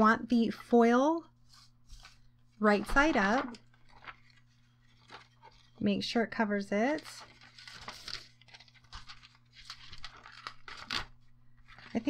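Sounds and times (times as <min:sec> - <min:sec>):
paper and foil rustling: 0:01.4 - 0:06.0, 0:06.8 - 0:12.0.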